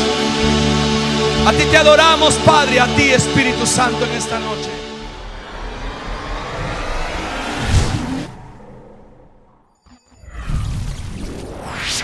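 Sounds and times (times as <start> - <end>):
rushing whoosh: 4.6 - 12.0.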